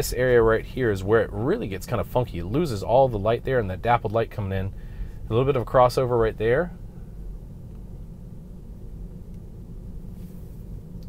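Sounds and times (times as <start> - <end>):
road and tyre noise in car cabin: 0.0 - 11.0.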